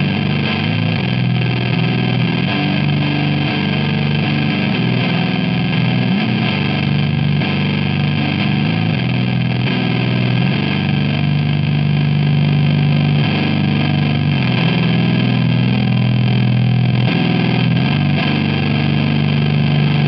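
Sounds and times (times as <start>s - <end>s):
fuzz electric guitar notes: 0.0s - 20.0s.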